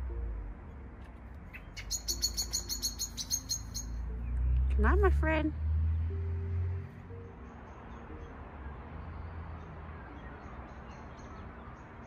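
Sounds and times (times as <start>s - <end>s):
blackbird chink calls: 1.5s - 4.0s.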